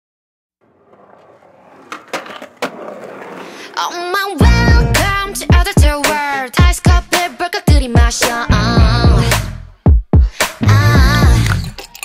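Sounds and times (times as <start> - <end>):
rolling noise: 0.6 - 5.2.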